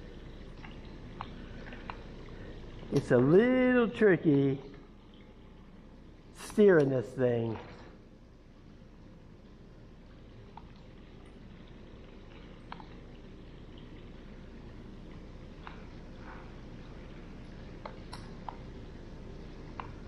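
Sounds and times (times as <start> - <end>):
pool water dripping and lapping: 0.0 - 20.0
steady low hum: 0.0 - 20.0.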